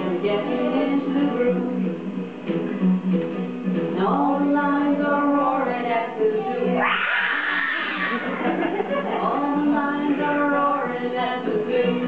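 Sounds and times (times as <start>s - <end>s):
children squealing cry: 6.6s - 9.1s.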